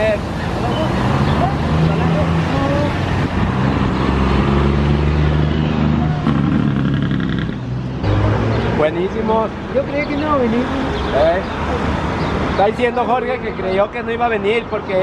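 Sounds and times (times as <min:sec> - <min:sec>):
road traffic noise: 0:00.0 - 0:15.0.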